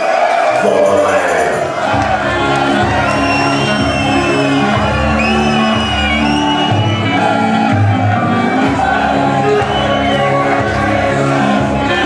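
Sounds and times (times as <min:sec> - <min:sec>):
people shouting: 0:00.0 - 0:12.0.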